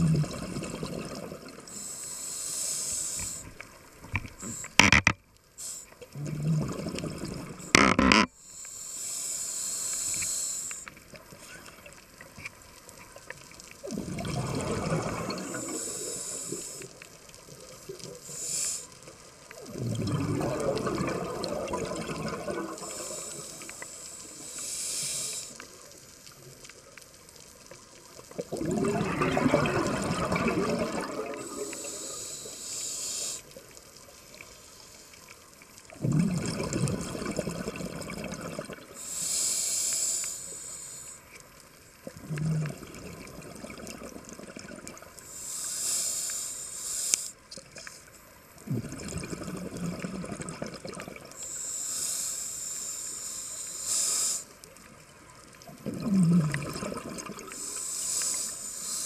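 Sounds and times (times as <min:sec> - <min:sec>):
exhaled bubbles rumbling: 0:00.0 - 0:01.6, 0:06.1 - 0:07.9, 0:13.8 - 0:15.8, 0:19.6 - 0:23.3, 0:28.3 - 0:31.8, 0:35.9 - 0:38.9, 0:42.0 - 0:45.1, 0:48.6 - 0:51.4, 0:55.6 - 0:57.6
scuba regulator breathing: 0:01.6 - 0:03.6, 0:05.6 - 0:06.6, 0:07.4 - 0:11.6, 0:14.4 - 0:17.1, 0:18.2 - 0:19.4, 0:20.0 - 0:25.8, 0:29.1 - 0:33.6, 0:38.9 - 0:41.3, 0:45.2 - 0:48.0, 0:51.3 - 0:54.6, 0:56.0 - 0:59.0.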